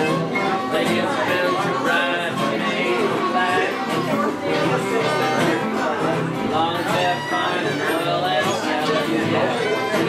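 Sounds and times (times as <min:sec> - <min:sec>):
acoustic guitars strumming: 0:00.0 - 0:10.0
fiddle: 0:00.0 - 0:10.0.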